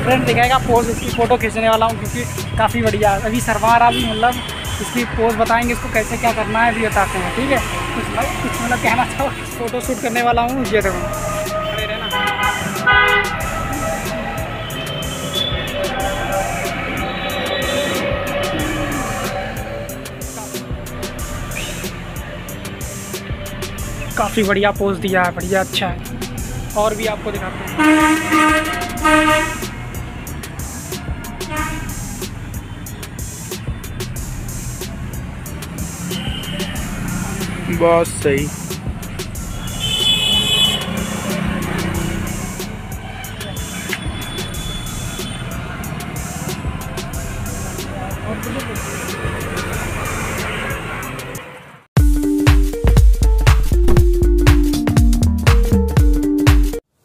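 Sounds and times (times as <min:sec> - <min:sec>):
motorcycle traffic passing: 0:00.0 - 0:51.9
vehicle horn honking: 0:02.4 - 0:09.5, 0:10.8 - 0:20.6, 0:27.4 - 0:30.4, 0:31.3 - 0:33.1, 0:36.0 - 0:37.6, 0:39.3 - 0:46.9.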